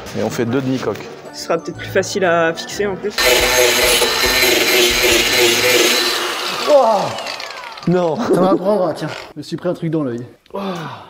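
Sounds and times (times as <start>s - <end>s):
power tool whining: 3.2s - 9.3s.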